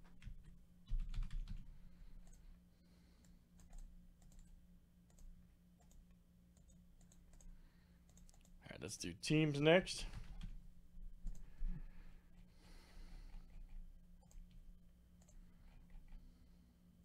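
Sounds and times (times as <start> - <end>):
computer mouse clicks: 2.2 - 2.4, 3.2 - 8.6, 13.3 - 14.6, 15.2 - 16.2.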